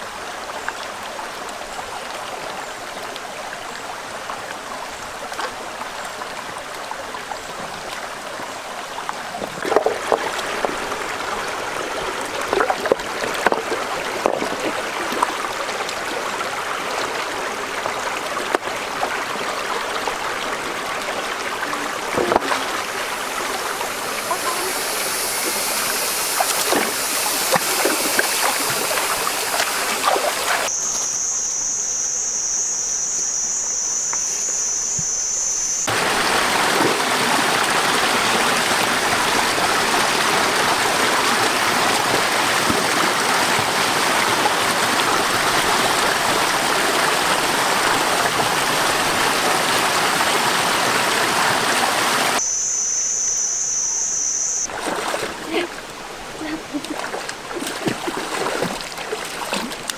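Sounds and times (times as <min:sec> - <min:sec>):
stream water rushing over rocks: 0:00.0 - 0:30.8, 0:35.9 - 0:52.4, 0:54.6 - 0:59.9
small cascade rushing: 0:03.1 - 0:30.7, 0:35.9 - 0:52.4
water splashing: 0:09.1 - 0:31.2, 0:35.9 - 0:52.4, 0:54.6 - 0:59.9
insect buzzing: 0:22.8 - 0:35.9, 0:52.3 - 0:54.7.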